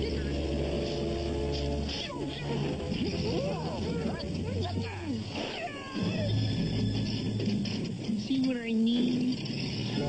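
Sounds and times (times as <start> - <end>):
high cartoon voices: 1.9 - 6.4.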